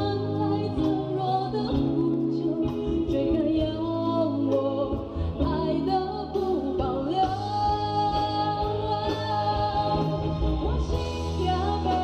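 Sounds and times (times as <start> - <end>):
live band playing: 0.0 - 12.0
woman singing a ballad: 0.0 - 12.0.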